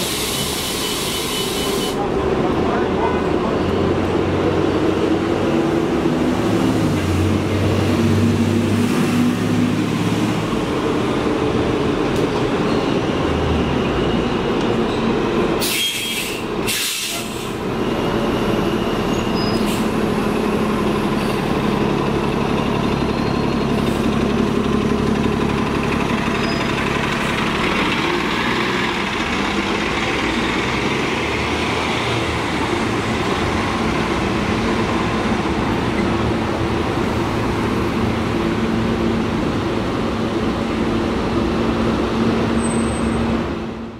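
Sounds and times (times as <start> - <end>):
air brakes hissing: 0.0 - 2.0, 15.6 - 17.6, 19.3 - 20.0
bus diesel engine running: 0.0 - 43.9.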